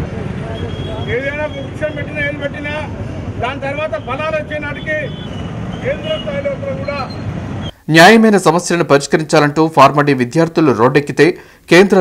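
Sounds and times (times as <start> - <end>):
low rumble of outdoor noise: 0.0 - 8.8.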